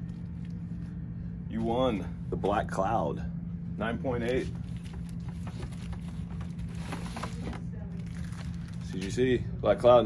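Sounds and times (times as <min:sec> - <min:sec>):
steady low hum: 0:00.0 - 0:10.0
plastic bags rustling: 0:04.6 - 0:09.2.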